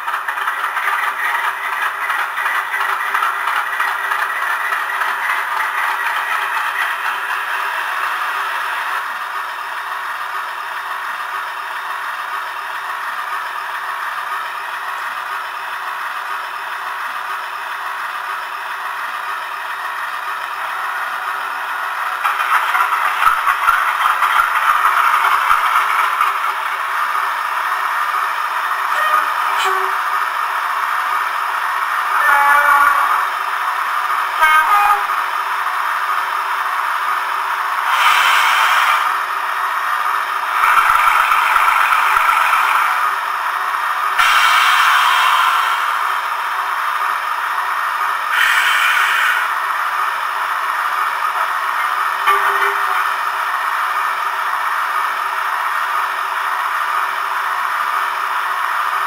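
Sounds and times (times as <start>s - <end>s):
diesel engine idling through small speaker: 0.0s - 59.0s.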